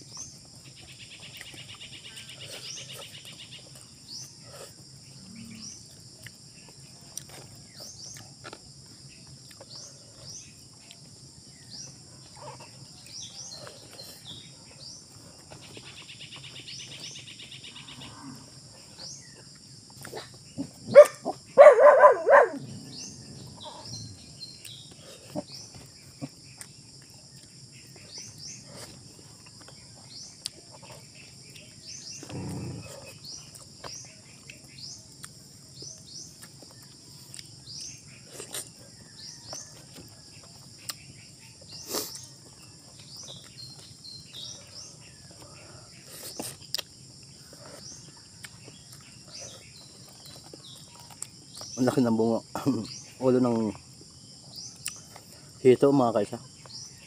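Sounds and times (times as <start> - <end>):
insect chorus: 0.0 - 57.0.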